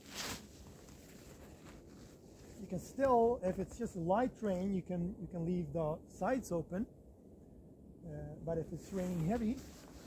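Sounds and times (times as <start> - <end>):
brief scraping rustle: 0.0 - 2.6
faint low rumble: 0.0 - 10.0.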